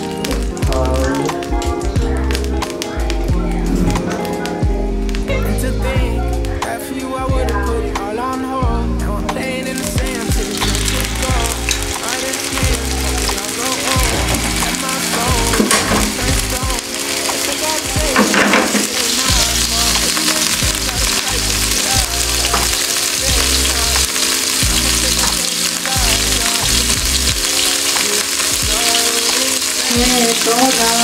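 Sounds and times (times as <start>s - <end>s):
background music with bass: 0.0s - 31.0s
chicken sizzling in hot oil: 9.7s - 31.0s.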